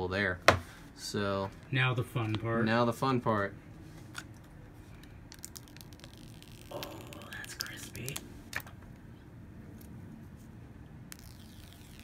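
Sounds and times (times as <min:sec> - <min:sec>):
plastic film peeling crackles: 0:04.9 - 0:08.2.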